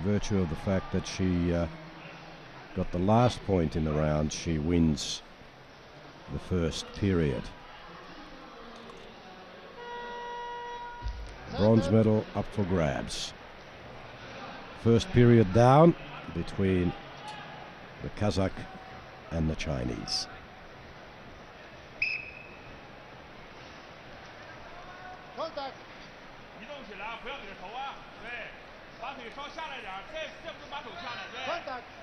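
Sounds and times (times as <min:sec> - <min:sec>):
faint arena murmur: 0:00.0 - 0:32.0
referee's whistle blast: 0:22.0 - 0:22.7.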